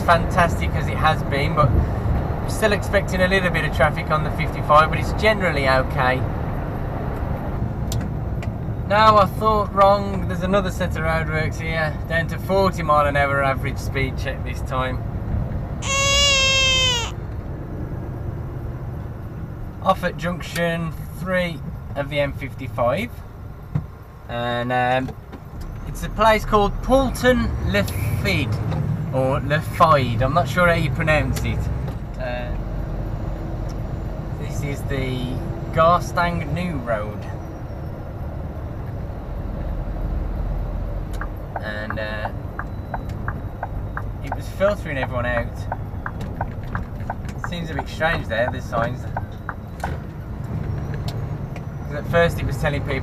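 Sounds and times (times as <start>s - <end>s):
lorry engine and tyres rumbling: 0.0s - 15.8s, 16.8s - 53.0s
loud held tone falling in pitch: 15.8s - 17.2s.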